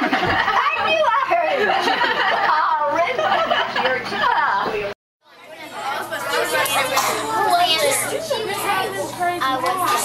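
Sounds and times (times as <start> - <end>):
schoolchildren chattering: 4.3 - 10.0.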